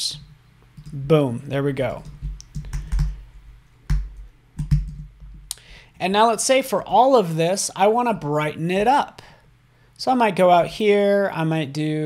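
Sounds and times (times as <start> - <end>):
keyboard and mouse clicks: 0.8 - 1.0, 2.0 - 3.2, 3.9 - 5.6.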